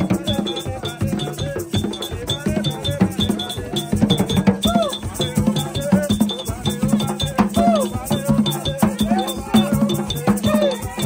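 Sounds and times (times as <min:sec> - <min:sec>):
hand drums beating: 0:00.0 - 0:11.0
voices chanting: 0:00.0 - 0:11.0.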